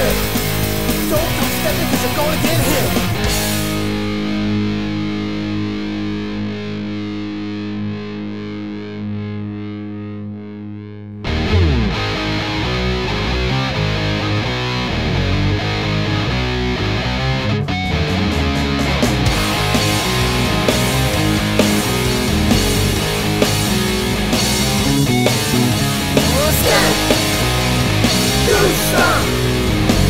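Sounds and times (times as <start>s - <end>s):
punk rock band playing: 0.0s - 8.5s, 11.2s - 30.0s
distorted electric guitar chord: 0.0s - 30.0s.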